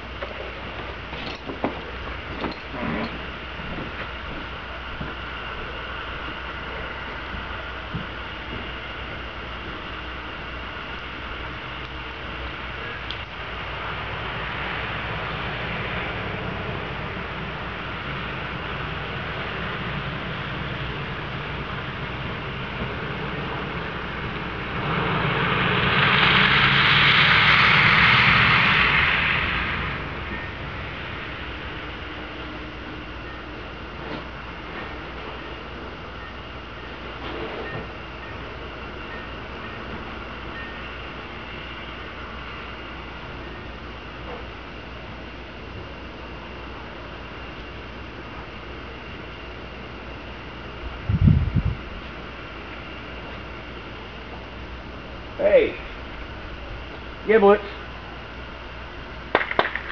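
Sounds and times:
distant traffic: 0.0 - 59.9
car passing on wet street: 25.1 - 30.3.

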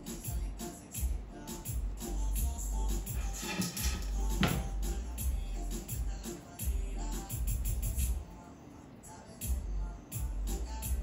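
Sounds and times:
music with pulsing beat: 0.0 - 8.2, 9.4 - 11.0.

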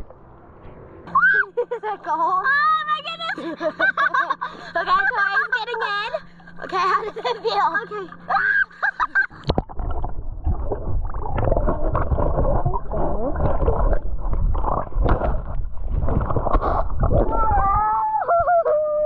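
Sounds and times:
underwater gurgle and slosh: 9.0 - 18.2.

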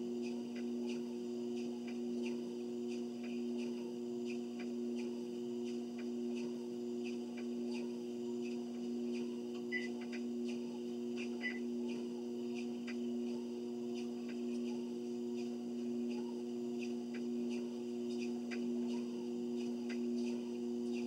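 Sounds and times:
treadmill motor humming: 0.0 - 21.0.

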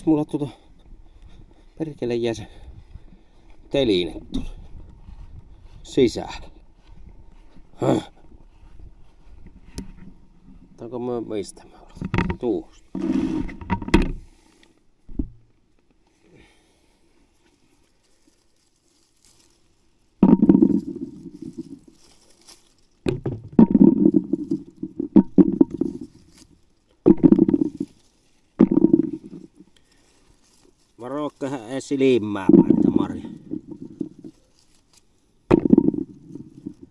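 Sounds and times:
berries rattling into a bucket: 20.2 - 29.8, 32.2 - 34.8, 35.5 - 36.9.

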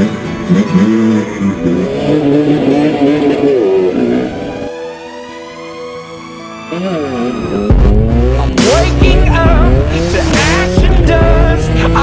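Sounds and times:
dirt bike engines revving: 0.0 - 4.7, 6.7 - 12.0.

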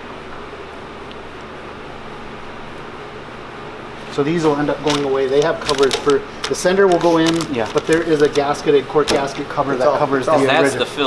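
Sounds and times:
ventilation fan hiss and hum: 0.0 - 11.0.

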